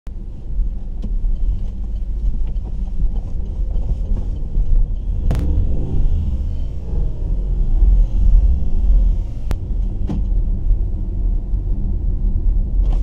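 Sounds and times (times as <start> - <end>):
car rumble inside cabin: 0.1 - 13.0.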